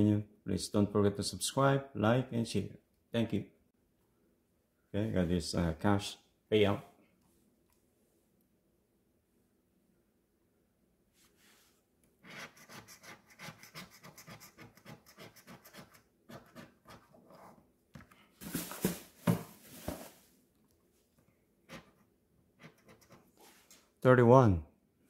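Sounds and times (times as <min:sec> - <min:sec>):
coin scratching lottery ticket: 0:12.2 - 0:17.5, 0:22.6 - 0:23.3.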